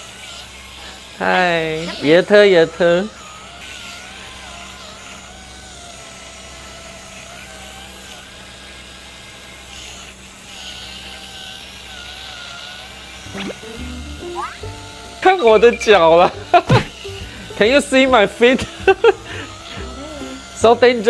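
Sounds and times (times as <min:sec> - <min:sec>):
small electric motors whining: 0:00.0 - 0:21.0.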